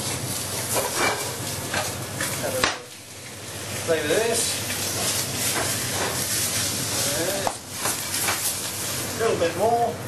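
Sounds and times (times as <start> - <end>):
meat sizzling in a frying pan: 0.0 - 10.0.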